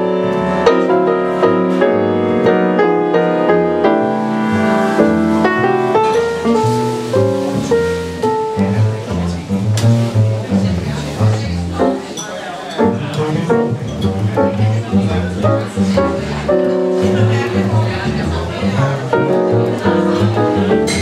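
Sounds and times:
piano chords: 0:00.0 - 0:21.0
plucked double bass: 0:00.0 - 0:21.0.

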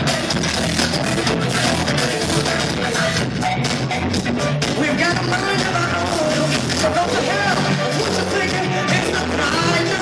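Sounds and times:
drum kit: 0:00.0 - 0:10.0
electric guitar: 0:00.0 - 0:10.0.

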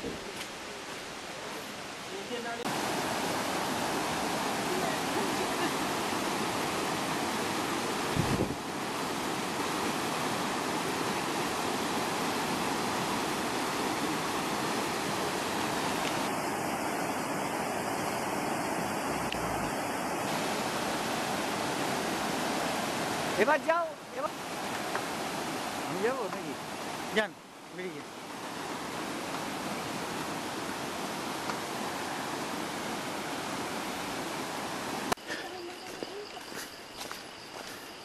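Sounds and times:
river rapids rushing over rocks: 0:01.3 - 0:35.3.

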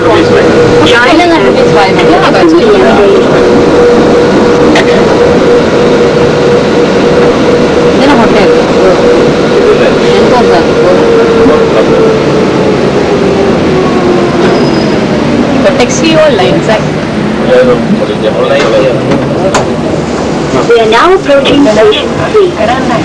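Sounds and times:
train motor whine: 0:00.0 - 0:22.4
train rumbling: 0:00.0 - 0:23.0.

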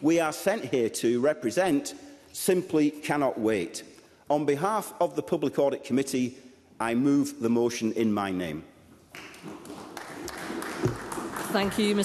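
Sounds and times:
scattered applause: 0:09.1 - 0:12.0.

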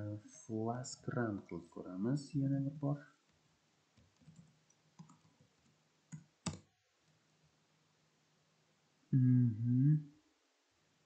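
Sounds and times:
computer keyboard keystrokes: 0:04.0 - 0:05.4, 0:06.1 - 0:06.7.

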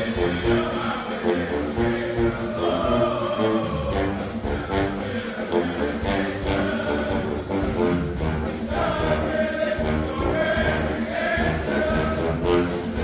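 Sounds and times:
brass ensemble playing: 0:00.0 - 0:13.0
horn chords: 0:00.0 - 0:13.0.

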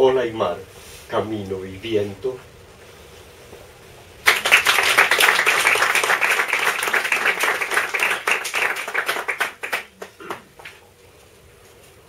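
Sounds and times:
audience applauding: 0:04.2 - 0:10.8.

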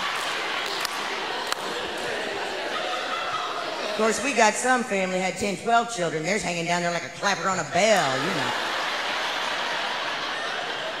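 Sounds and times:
audience laughing: 0:00.0 - 0:04.8, 0:07.3 - 0:11.0.

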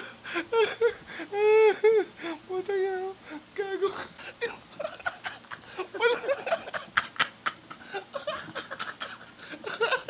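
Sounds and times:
young men chuckling: 0:04.2 - 0:10.0.

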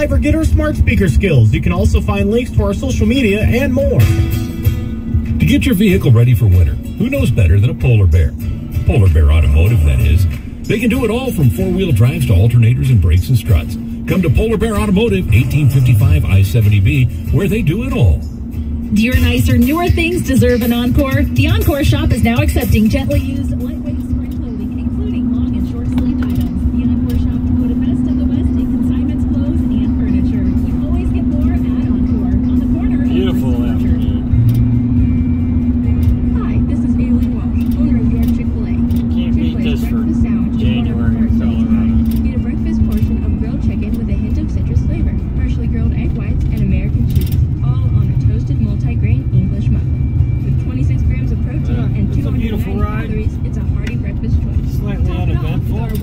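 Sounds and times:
voice on car radio: 0:00.0 - 0:04.1, 0:05.3 - 0:34.6, 0:35.8 - 0:49.9, 0:50.5 - 0:56.0
engine and tyres droning: 0:00.0 - 0:56.0
music from car radio: 0:00.0 - 0:56.0.

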